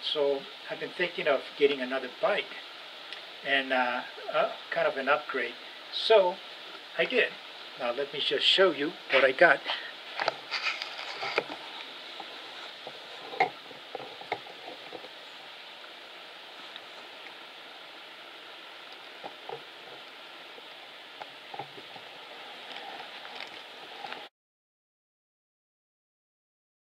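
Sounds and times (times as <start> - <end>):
background hiss: 0.0 - 24.3.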